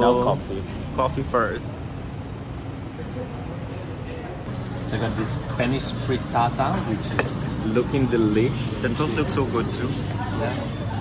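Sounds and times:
low traffic hum: 0.0 - 11.0.

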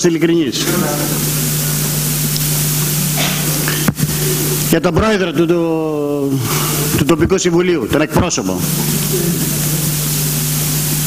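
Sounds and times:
constant low hum: 0.0 - 11.0
steady hiss: 0.0 - 11.0.

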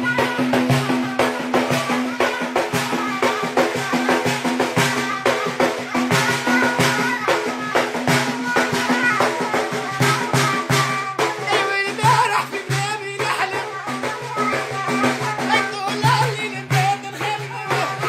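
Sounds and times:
frame drum fast rhythm: 0.0 - 18.0.

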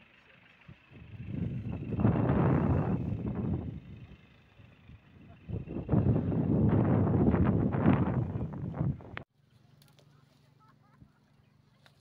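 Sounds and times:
wind buffeting microphone: 0.9 - 9.2.

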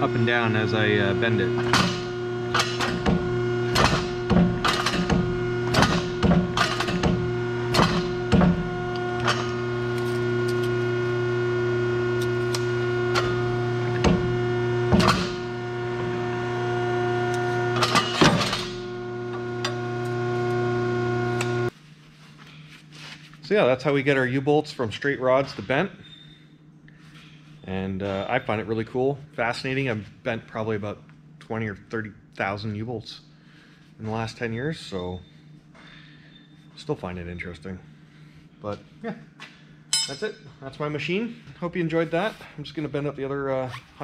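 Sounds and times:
hydraulic pump humming: 0.0 - 21.7
metal clicks and clanks: 1.6 - 8.4.

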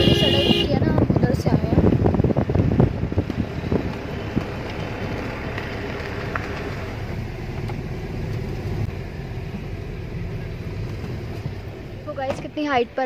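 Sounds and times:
car engine and road rumble: 0.0 - 13.0.

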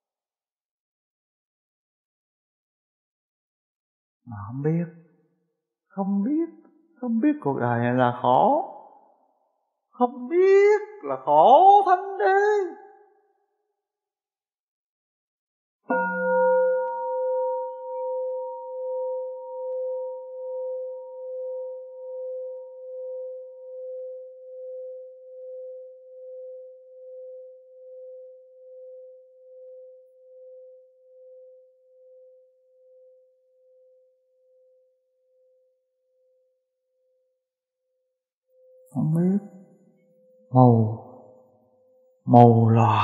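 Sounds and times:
bowl bell ringing: 15.9 - 24.0.

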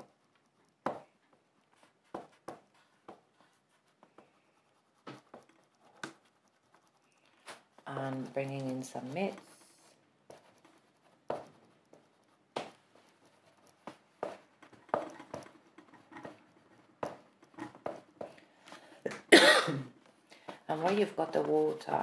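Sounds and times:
pastel scuffing on paper: 0.0 - 19.3, 20.0 - 22.0
person coughing: 19.1 - 20.0.

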